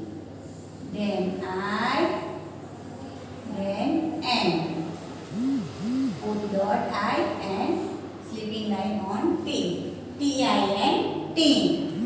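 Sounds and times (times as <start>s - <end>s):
woman humming: 5.3s - 6.2s.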